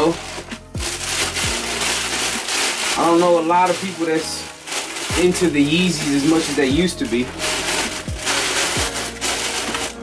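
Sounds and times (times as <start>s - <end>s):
tissue paper rustling and crinkling: 0.0s - 10.0s.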